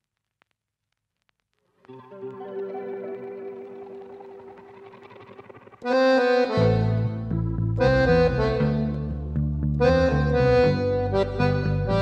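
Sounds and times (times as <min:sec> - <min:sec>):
rhythmic bass line: 0:04.0 - 0:12.0
accordion playing chords: 0:05.8 - 0:12.0.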